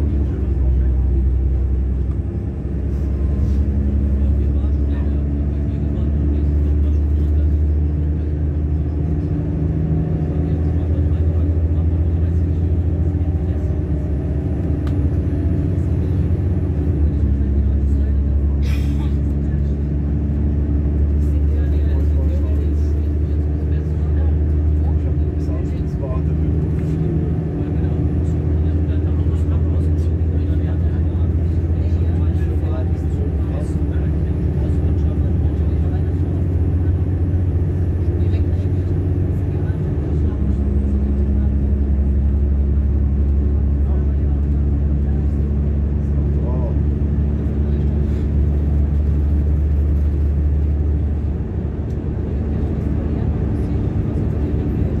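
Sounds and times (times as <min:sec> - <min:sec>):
train running rumble: 0:00.0 - 0:55.0.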